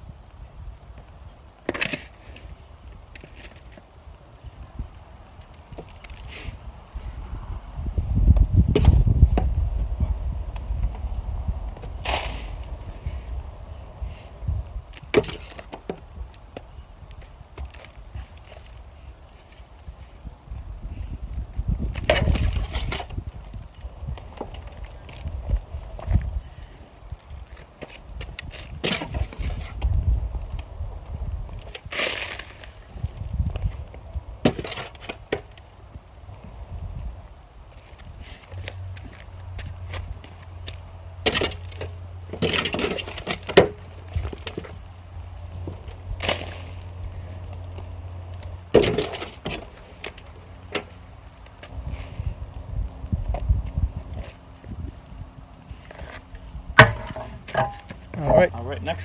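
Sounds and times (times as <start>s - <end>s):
shovel scooping soil: 12.0s - 12.6s.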